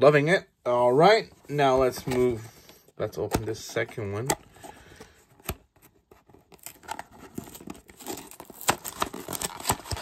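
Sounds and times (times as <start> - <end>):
cardboard tearing and crackling: 6.1 - 10.0.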